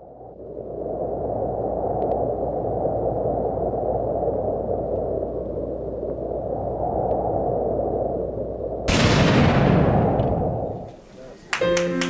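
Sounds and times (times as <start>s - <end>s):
low rumbling noise: 0.0s - 11.2s
faint crackle: 0.0s - 11.3s.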